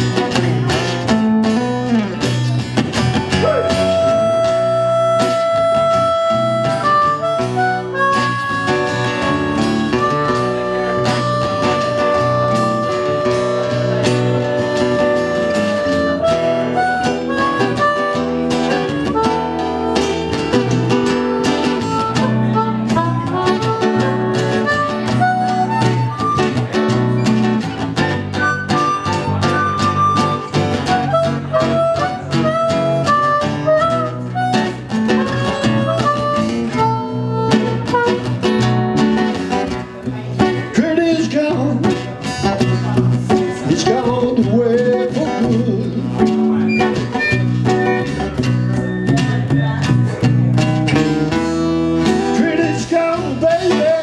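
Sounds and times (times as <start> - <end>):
strummed acoustic guitars: 0.0 - 54.0
harmonica wailing melody: 3.3 - 39.8, 43.8 - 49.8.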